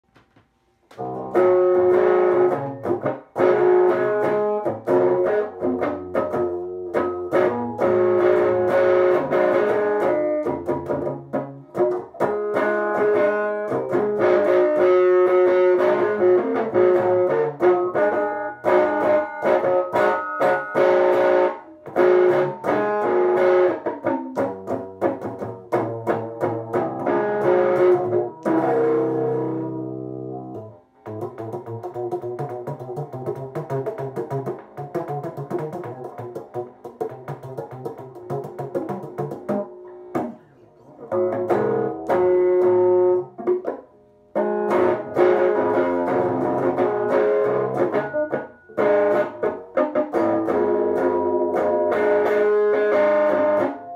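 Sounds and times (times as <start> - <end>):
electric guitar rhythm playing: 0.1 - 53.9.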